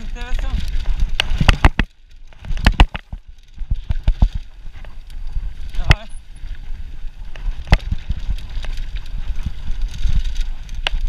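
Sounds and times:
bike clacking over bumps: 0.0 - 11.0
wind on microphone: 0.0 - 11.0.

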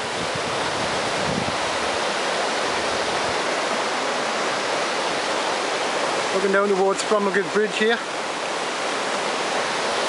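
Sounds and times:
water rushing over weir: 0.0 - 10.0.

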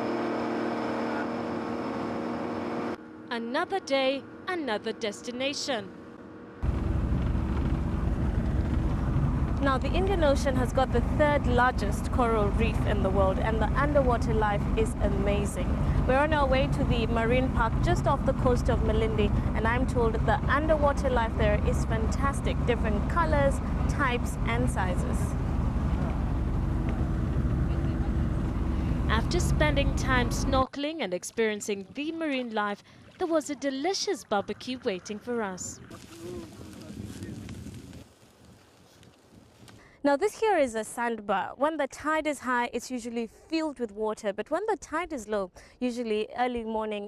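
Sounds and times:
motorboat engine running: 0.0 - 30.7, 31.8 - 38.0
faint steady hum: 1.0 - 30.7
wind buffeting microphone: 35.5 - 39.7.

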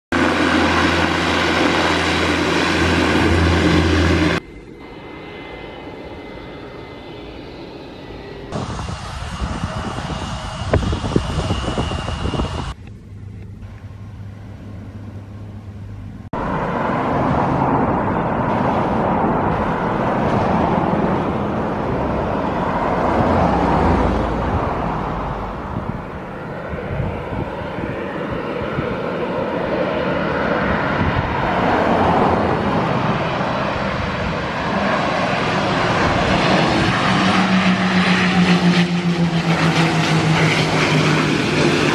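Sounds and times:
rushing aircraft engine noise: 0.1 - 41.9
turboprop propellers droning: 0.1 - 41.9.

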